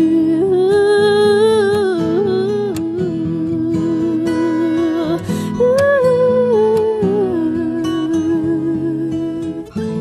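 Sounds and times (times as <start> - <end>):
acoustic guitars: 0.0 - 10.0
woman singing with vibrato: 0.0 - 10.0.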